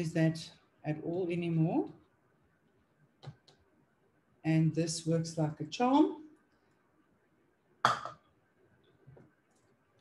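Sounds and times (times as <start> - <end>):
plastic cup knocking on counter: 7.8 - 8.2.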